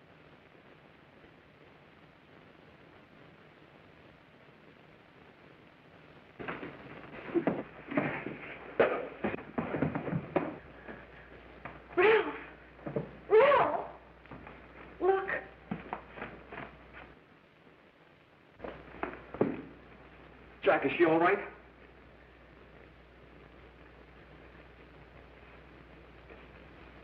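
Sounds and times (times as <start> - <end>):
fistfight knocks and scuffling: 6.4 - 11.9
woman screaming: 11.9 - 12.6, 13.3 - 14.0, 15.0 - 15.5.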